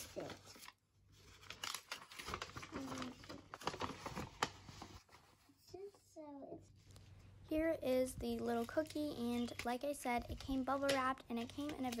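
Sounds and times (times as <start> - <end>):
paper rustling and crinkling: 0.0 - 5.8, 8.3 - 12.0.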